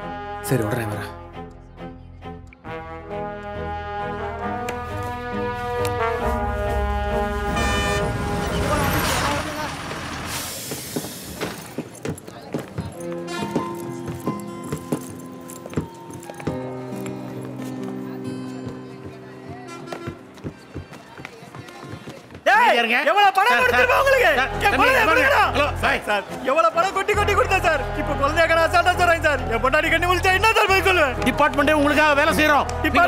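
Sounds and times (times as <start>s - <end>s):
bus horn tooting: 5.2s - 10.3s, 19.6s - 20.4s
air brakes hissing: 10.3s - 11.8s.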